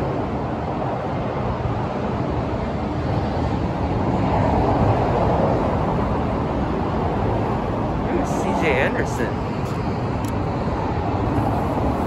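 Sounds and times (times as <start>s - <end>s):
highway traffic roar: 0.0s - 12.0s.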